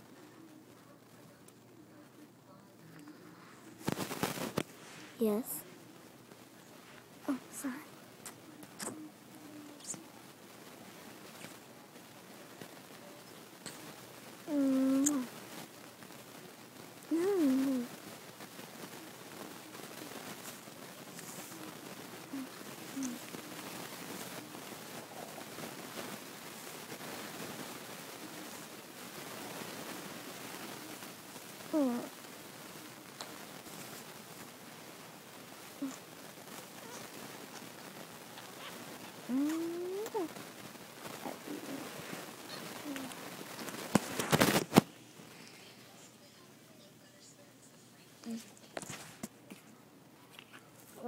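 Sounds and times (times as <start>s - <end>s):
faint background hiss: 0.0s - 51.0s
faint low hum: 0.0s - 51.0s.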